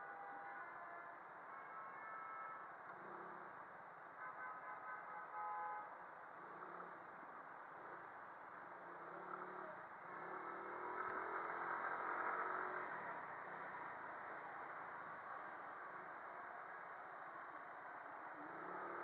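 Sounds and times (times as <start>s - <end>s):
muffled traffic noise: 0.0s - 19.0s.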